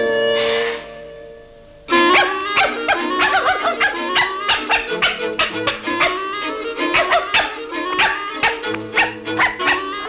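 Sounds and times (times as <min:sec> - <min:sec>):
music playing: 0:01.9 - 0:10.0
cartoon dog yapping: 0:02.0 - 0:10.0.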